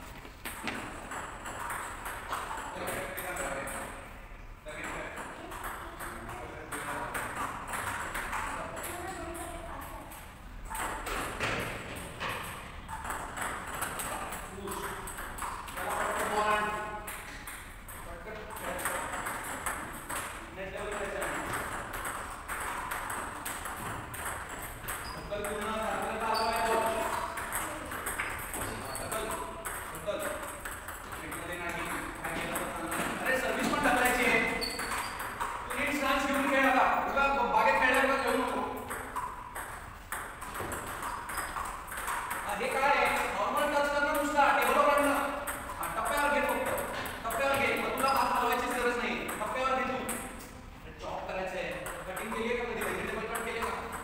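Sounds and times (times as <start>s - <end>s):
table tennis balls clicking: 0.4s - 50.6s, 51.5s - 54.0s.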